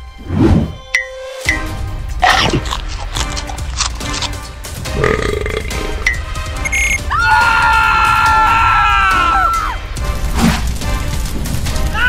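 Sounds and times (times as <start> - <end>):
background music: 0.0 - 12.0
cartoon burp: 2.2 - 3.2, 4.9 - 6.0.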